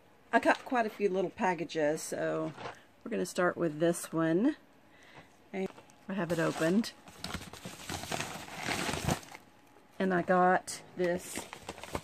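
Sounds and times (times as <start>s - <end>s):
paper packaging rustling: 5.6s - 9.5s, 11.1s - 12.0s.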